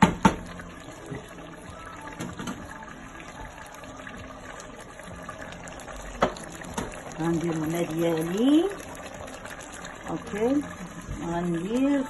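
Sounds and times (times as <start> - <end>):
water pouring into a metal pot: 0.0 - 12.0.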